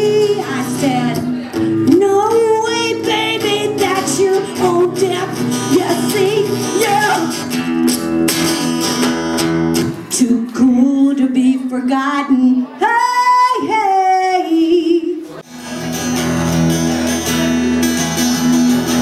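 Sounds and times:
woman singing with vibrato: 0:00.0 - 0:07.5, 0:10.0 - 0:15.4
acoustic guitar strumming: 0:00.0 - 0:10.3, 0:15.4 - 0:19.0.

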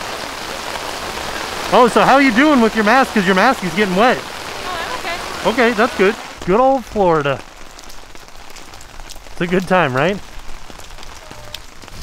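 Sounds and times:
heavy rain on wet pavement: 0:00.0 - 0:12.0.

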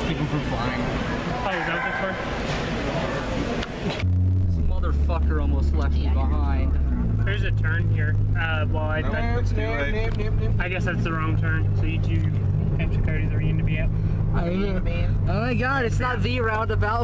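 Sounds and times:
car engine and road hum: 0:00.0 - 0:17.0
shop chatter: 0:00.0 - 0:17.0.

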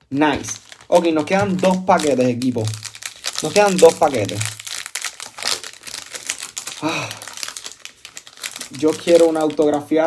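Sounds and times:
foil wrapper crinkling: 0:00.1 - 0:10.0.

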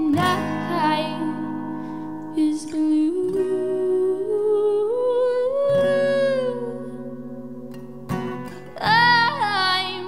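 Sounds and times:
acoustic guitar chords: 0:00.0 - 0:10.0.

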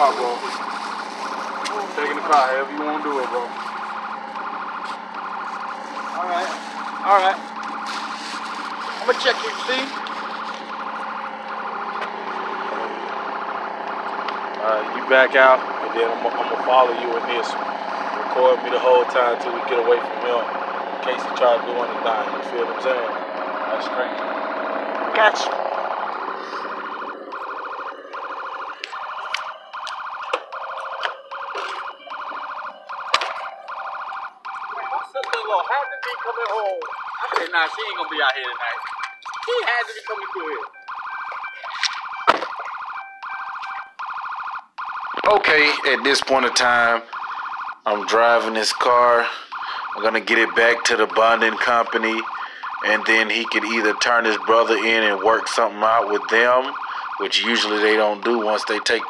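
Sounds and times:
car warning tone beeping: 0:00.0 - 0:59.0.

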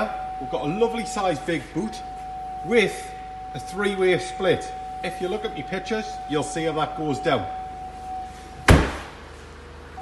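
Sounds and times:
car tailgate slamming: 0:08.6 - 0:09.2.

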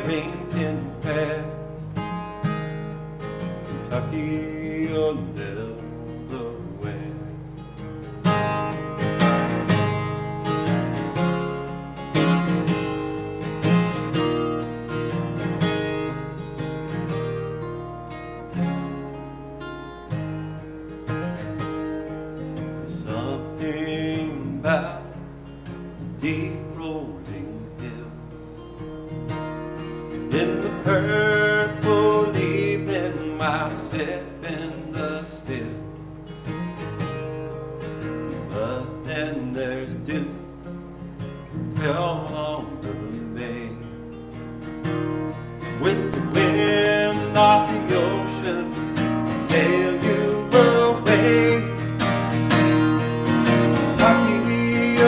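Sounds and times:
man singing: 0:00.0 - 0:02.2, 0:03.6 - 0:07.4, 0:22.8 - 0:28.7, 0:30.2 - 0:36.0, 0:38.2 - 0:44.1, 0:45.6 - 0:52.4, 0:53.4 - 0:55.0
acoustic guitar strumming: 0:00.0 - 0:55.0.

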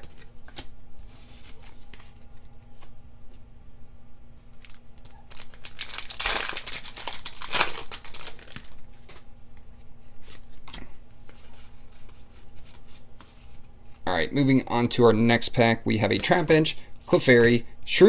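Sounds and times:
foil pack tearing open: 0:04.6 - 0:08.8.

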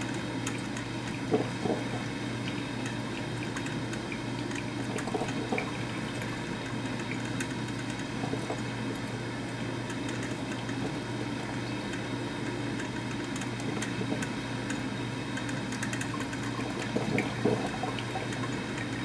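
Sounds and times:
low steady hum: 0:00.0 - 0:19.0
coffee maker hissing and gurgling: 0:01.2 - 0:06.9, 0:16.5 - 0:19.0.

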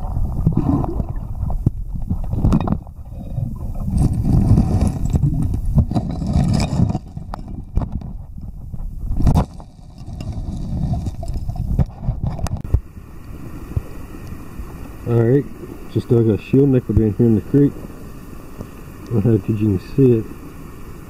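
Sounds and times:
muffled underwater creek rumble: 0:00.0 - 0:19.4
stones knocking and scraping: 0:00.6 - 0:12.7.

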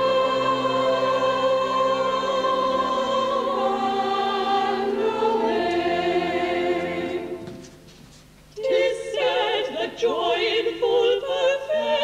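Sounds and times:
chorus singing held notes: 0:00.0 - 0:07.9, 0:08.6 - 0:12.0.

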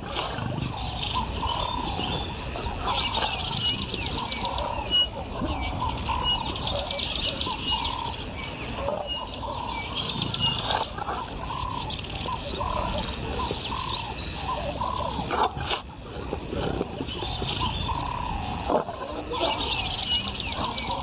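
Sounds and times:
birds calling: 0:00.0 - 0:21.0
high insect drone: 0:00.0 - 0:21.0.

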